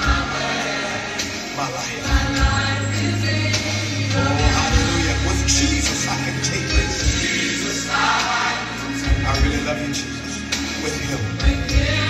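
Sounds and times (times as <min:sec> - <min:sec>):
choir singing gospel song: 0:00.0 - 0:12.0
deep bass line: 0:02.0 - 0:08.2, 0:08.8 - 0:12.0.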